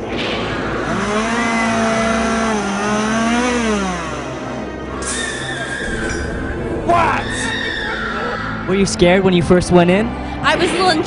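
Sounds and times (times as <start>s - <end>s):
chainsaw engine revving: 0.5s - 5.5s.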